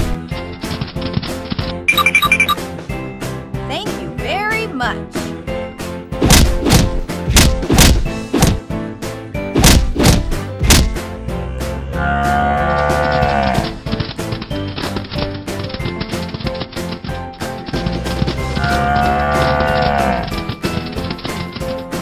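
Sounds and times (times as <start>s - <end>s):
cow mooing: 11.2s - 13.8s, 18.5s - 20.3s.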